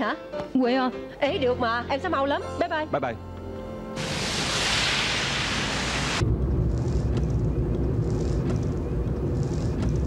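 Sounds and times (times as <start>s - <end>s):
car tyres hissing on wet road: 4.0s - 6.2s
moving car rumble: 6.2s - 10.0s.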